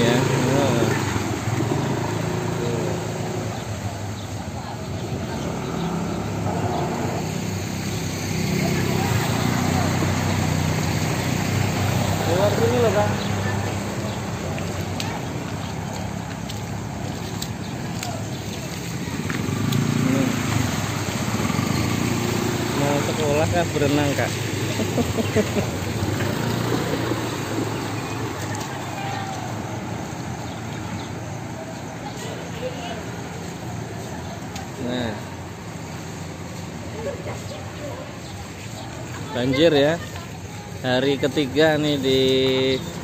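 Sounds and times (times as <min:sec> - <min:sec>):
people's voices: 0:00.0 - 0:43.0
scooter engines at low speed: 0:00.0 - 0:43.0.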